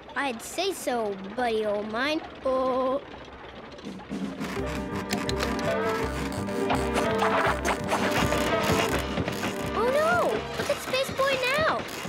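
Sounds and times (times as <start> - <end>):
cartoon music with low beat: 3.9 - 11.9.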